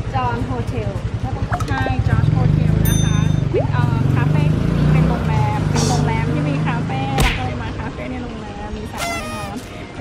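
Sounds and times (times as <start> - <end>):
vehicle engine idling: 0.0 - 7.0
women talking: 0.0 - 9.7.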